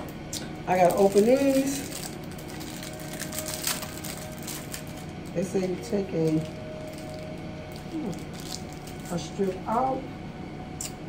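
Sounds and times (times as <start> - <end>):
package crinkling: 0.4 - 9.5.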